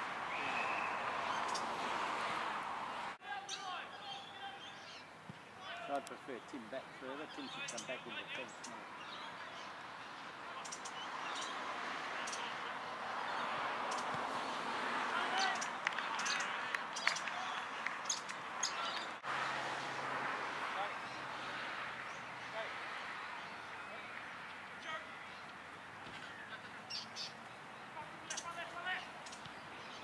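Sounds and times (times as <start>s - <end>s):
bird calls: 0.3s - 1.8s, 6.2s - 11.6s.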